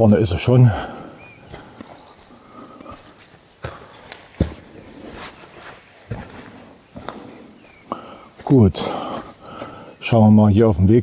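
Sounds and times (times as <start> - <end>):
footsteps on forest trail: 0.0 - 10.4.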